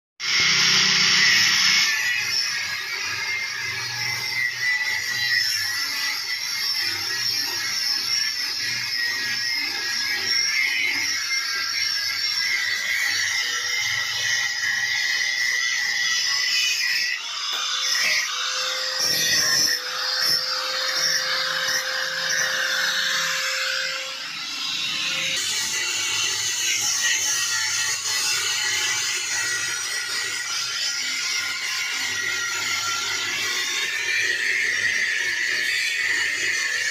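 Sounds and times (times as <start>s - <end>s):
angle grinder cutting metal: 0.2s - 36.9s.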